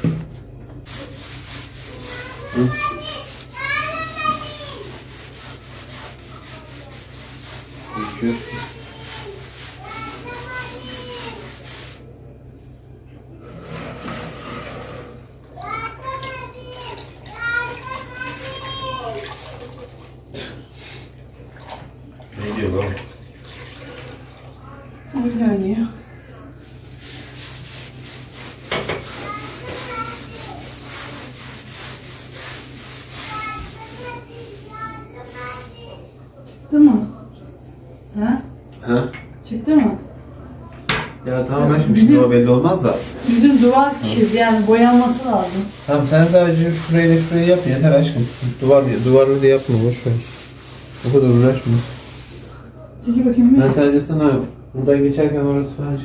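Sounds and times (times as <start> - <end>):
wet cloth rubbing on wall: 0.1 - 12.1, 13.4 - 15.3, 26.6 - 36.1, 42.0 - 52.7
water sloshing in a bowl: 15.9 - 25.6.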